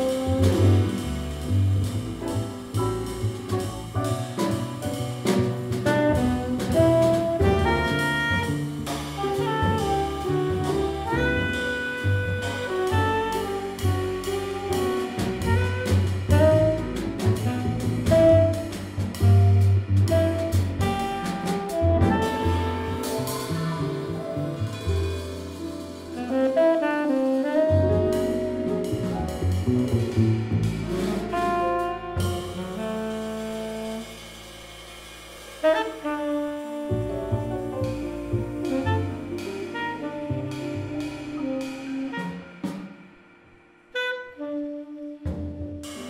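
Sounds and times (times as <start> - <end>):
double bass: 0.0 - 46.0
drums: 0.0 - 46.0
jazz band playing: 0.0 - 46.0
piano: 0.0 - 46.0
tenor saxophone melody: 6.0 - 18.9, 20.1 - 24.2, 26.2 - 28.9, 31.2 - 34.3, 35.6 - 42.6, 44.0 - 46.0.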